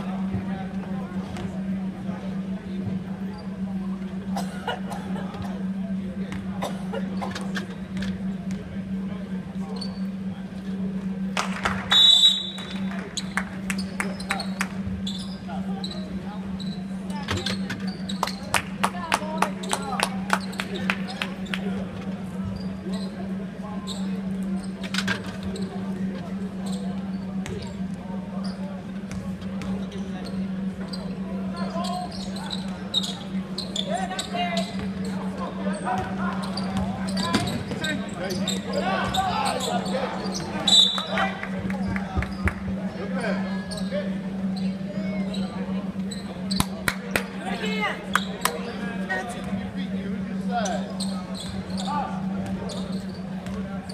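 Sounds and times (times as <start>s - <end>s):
steady low hum: 0.0s - 53.9s.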